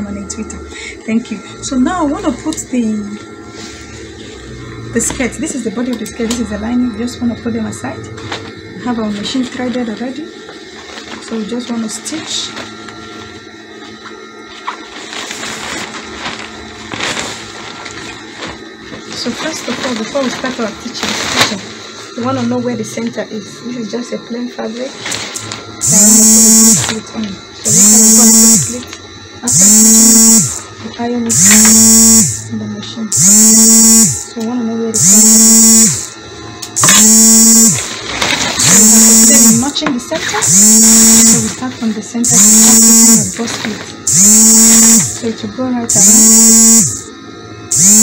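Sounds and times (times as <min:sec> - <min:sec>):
faint steady hum: 0:00.0 - 0:48.0
cloth rustling: 0:14.7 - 0:22.0
sewing machine motor whining: 0:27.6 - 0:30.7, 0:33.1 - 0:34.4, 0:36.8 - 0:43.4, 0:44.0 - 0:45.3.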